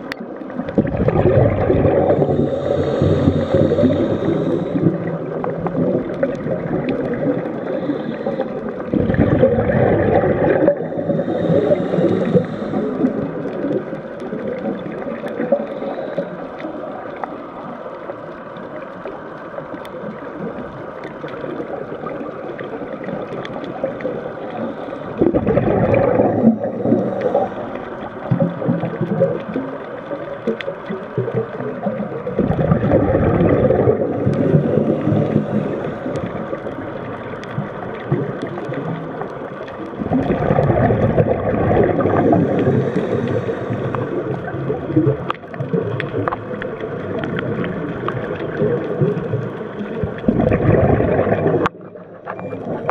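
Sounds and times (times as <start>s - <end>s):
quiet bubbling and hiss: 0.0s - 52.9s
bursts of exhaled air bubbles: 0.5s - 15.6s, 25.1s - 29.7s, 30.4s - 39.0s, 40.0s - 52.9s.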